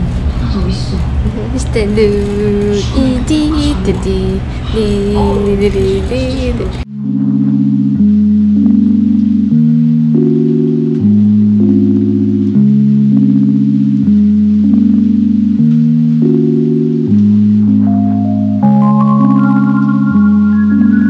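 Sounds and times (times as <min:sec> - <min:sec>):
higher single-note melody: 0:06.9 - 0:21.0
sustained low chords: 0:06.9 - 0:21.0.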